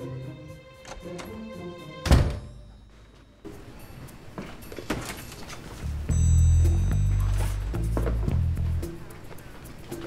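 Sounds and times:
door slamming shut: 2.0s - 2.5s.

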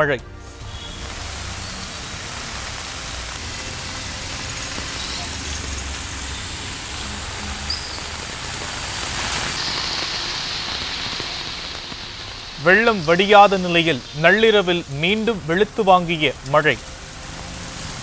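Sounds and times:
heavy rain on a flooded street: 0.4s - 18.0s
motorbikes passing: 0.4s - 18.0s.

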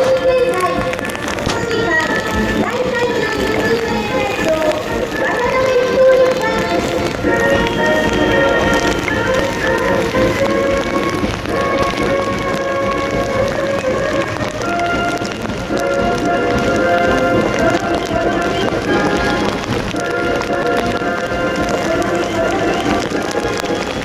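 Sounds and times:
heavy rain falling: 0.0s - 24.0s
military band playing march: 0.0s - 24.0s.

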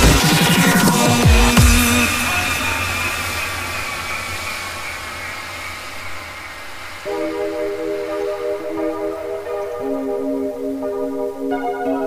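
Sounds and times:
noisy wash with low hum: 0.0s - 9.8s.

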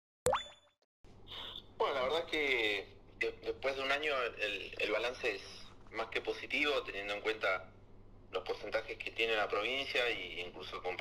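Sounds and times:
synthetic pop with upward sweep: 0.3s - 0.7s
man speaking: 1.8s - 7.7s, 8.3s - 11.0s.

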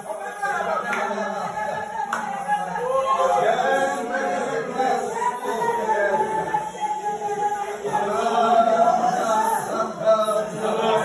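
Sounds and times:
crowd praying aloud: 0.0s - 11.0s.

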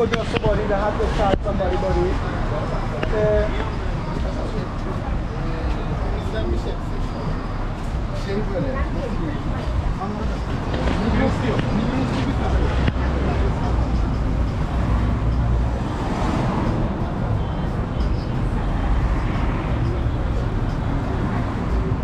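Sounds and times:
indistinct voices: 0.0s - 22.0s
traffic rumble: 0.0s - 22.0s.

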